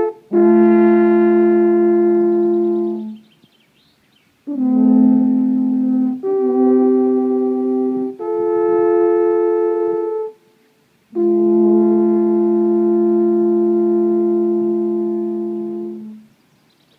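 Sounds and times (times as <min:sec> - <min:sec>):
alphorns playing in harmony: 0:00.0 - 0:03.2, 0:04.5 - 0:10.4, 0:11.1 - 0:16.3.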